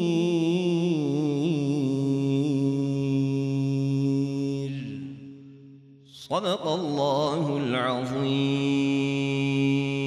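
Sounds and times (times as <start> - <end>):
man reciting a long note: 0.0 - 5.2, 6.1 - 10.0.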